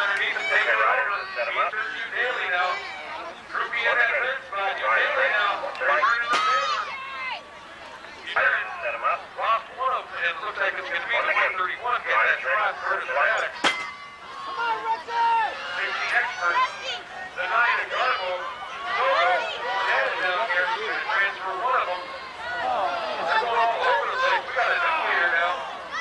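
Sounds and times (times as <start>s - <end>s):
announcer over public address: 0.0s - 7.3s, 8.2s - 25.8s.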